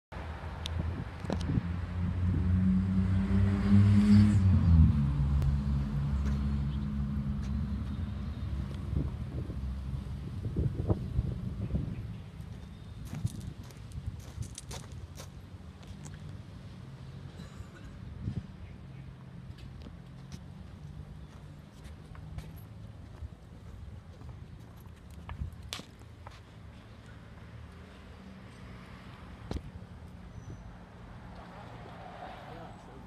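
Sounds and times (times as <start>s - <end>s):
vehicle engine revving: 1.4s - 11.6s.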